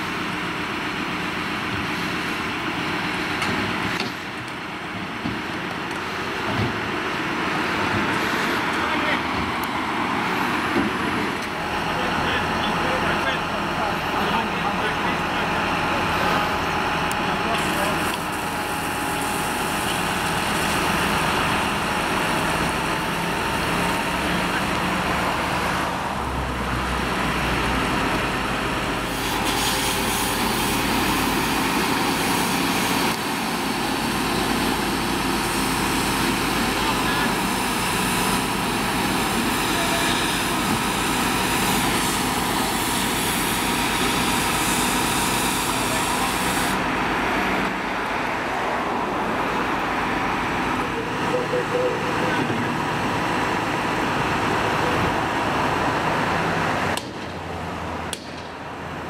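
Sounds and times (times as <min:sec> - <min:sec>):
fire engine running: 0:00.0 - 0:59.0
voices talking: 0:11.3 - 0:19.3, 0:45.6 - 0:55.1.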